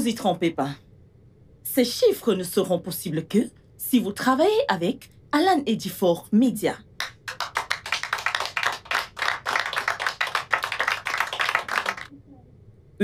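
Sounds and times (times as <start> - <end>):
people applauding: 7.0 - 12.1.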